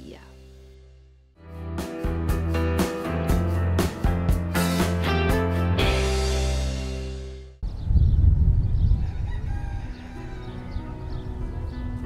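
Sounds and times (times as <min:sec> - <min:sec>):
theme music: 0:00.0 - 0:07.6
heavy low rumble: 0:07.6 - 0:09.0
rooster crowing: 0:08.9 - 0:10.9.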